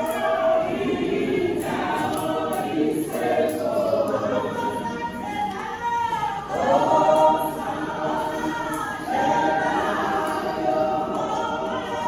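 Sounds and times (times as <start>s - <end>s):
women's choir singing gospel: 0.0s - 12.0s.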